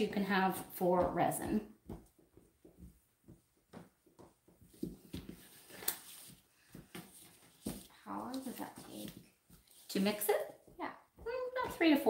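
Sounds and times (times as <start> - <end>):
person speaking: 7.9 - 12.0.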